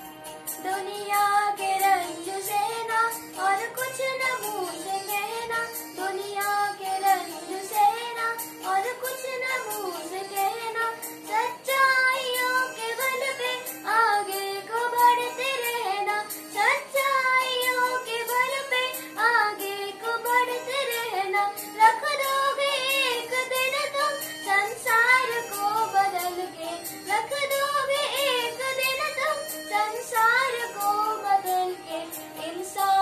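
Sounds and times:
boy singing: 0.6 - 33.0.

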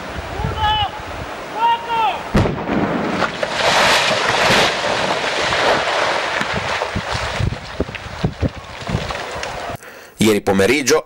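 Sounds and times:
explosion rumble: 2.3 - 9.6
rocks thudding down slope: 2.3 - 9.8.

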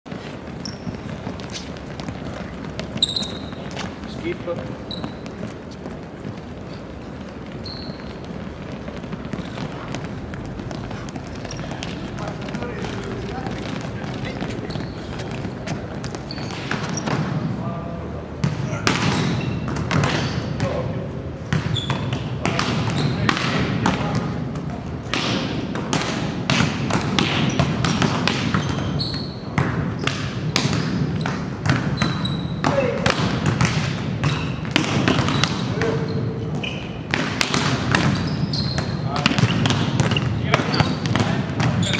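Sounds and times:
sneakers running on sports court: 0.1 - 17.5
sneaker squeak: 0.1 - 17.6, 18.4 - 25.5, 26.5 - 41.9
volleyballs struck and bouncing: 0.1 - 41.9.

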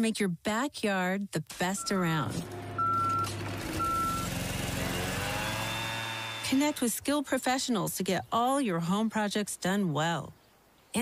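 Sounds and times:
truck engine running with whine: 2.3 - 6.8
reversing alarm beep: 2.8 - 4.3.

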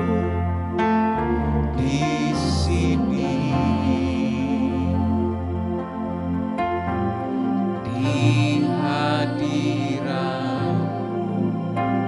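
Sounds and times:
person singing: 0.0 - 6.4, 7.7 - 12.0
electronic keyboard chords: 0.0 - 12.0.

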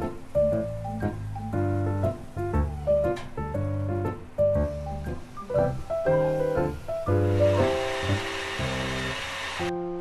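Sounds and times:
light music with plucked notes: 0.0 - 8.9
stand mixer whirring: 7.3 - 9.7.

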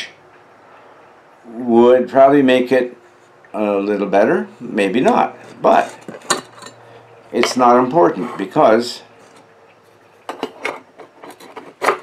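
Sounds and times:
metal scraping on metal: 4.4 - 9.5, 10.3 - 12.0.

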